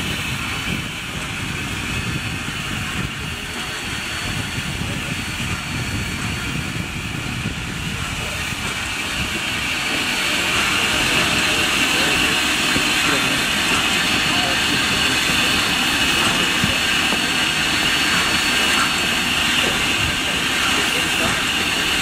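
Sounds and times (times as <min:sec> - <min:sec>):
steam locomotive venting steam: 0:00.0 - 0:22.0.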